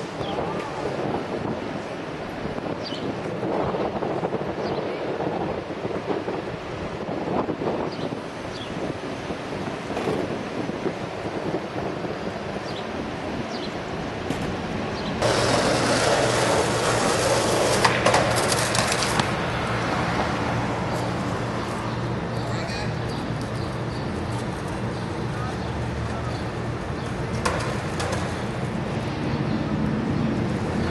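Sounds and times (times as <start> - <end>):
skateboard wheels rolling on pavement: 0.0 - 30.9
skateboard knocking on ground: 15.2 - 19.3, 27.4 - 28.4.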